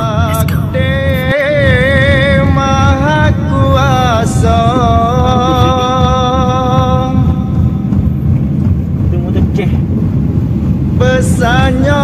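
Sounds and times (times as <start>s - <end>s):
car driving rumble: 0.0s - 12.0s.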